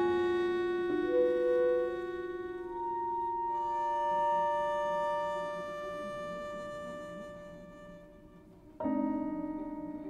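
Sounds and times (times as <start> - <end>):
clarinet: 0.0 - 10.0
prepared piano: 0.0 - 10.0.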